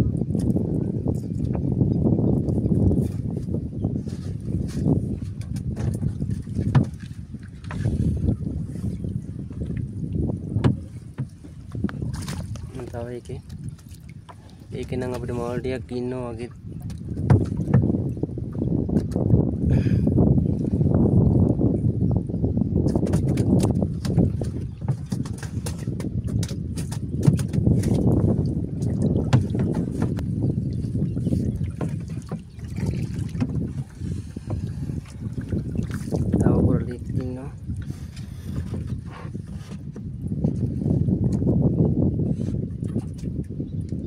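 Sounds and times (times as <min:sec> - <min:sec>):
wind buffeting microphone: 0:00.0 - 0:44.0
fishing net knocks and rustles: 0:04.1 - 0:08.0, 0:10.6 - 0:12.9, 0:16.9 - 0:18.0, 0:22.9 - 0:30.3.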